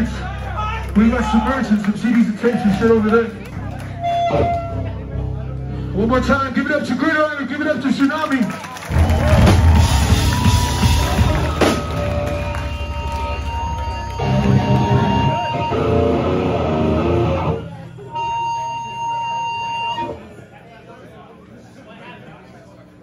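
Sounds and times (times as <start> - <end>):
distorted electric guitars and bass: 2.6 - 7.0, 8.9 - 20.3
amp feedback whine: 8.9 - 20.4.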